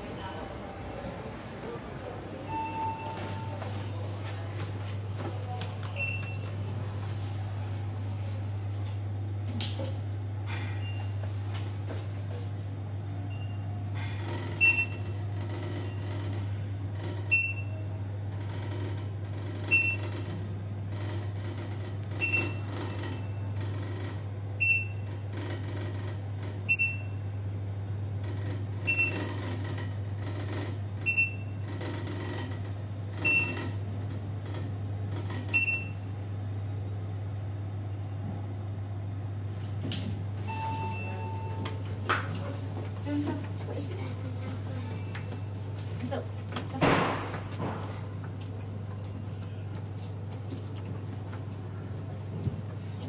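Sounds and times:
elevator humming: 0.0 - 53.0
short high elevator beep: 2.5 - 3.6, 40.4 - 41.6.

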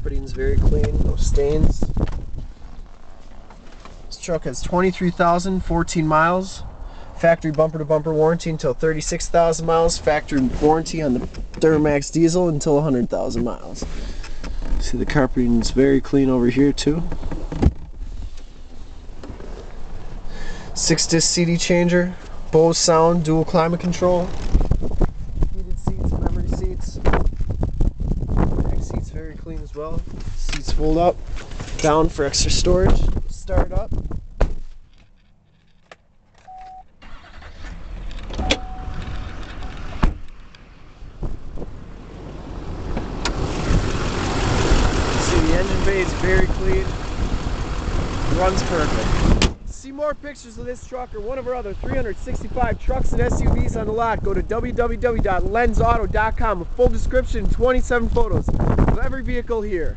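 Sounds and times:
sharp thump: 34.4 - 34.7, 40.0 - 40.3, 49.3 - 49.6
diesel engine idling: 41.5 - 49.4.

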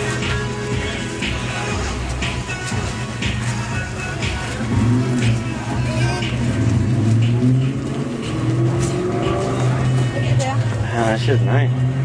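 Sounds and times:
car engine idling: 0.0 - 11.6
people talking: 9.6 - 11.8.

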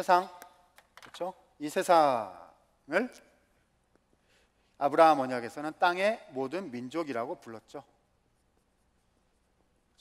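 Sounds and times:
marker writing on a whiteboard: 8.2 - 10.0.

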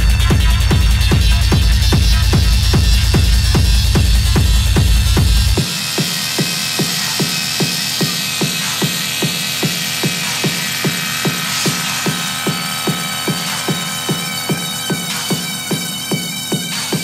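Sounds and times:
pulsing techno beat: 0.0 - 17.0
hissing high synth wash: 4.6 - 17.0.

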